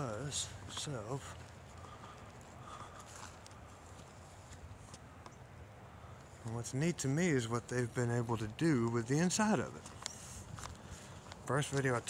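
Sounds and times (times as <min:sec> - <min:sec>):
faint footsteps walking: 0:00.0 - 0:05.4, 0:08.5 - 0:12.0.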